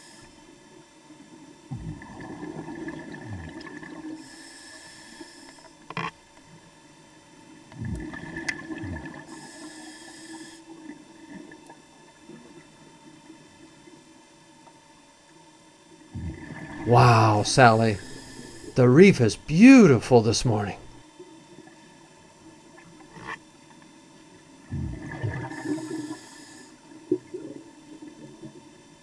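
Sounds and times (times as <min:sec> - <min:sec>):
regulator inhalation hiss: 0:00.0 - 0:00.4, 0:04.2 - 0:05.7, 0:09.3 - 0:10.6, 0:17.6 - 0:18.8, 0:25.6 - 0:26.8
exhaled air bubbling underwater: 0:01.6 - 0:04.5, 0:07.6 - 0:09.6, 0:16.0 - 0:18.8, 0:24.5 - 0:28.7.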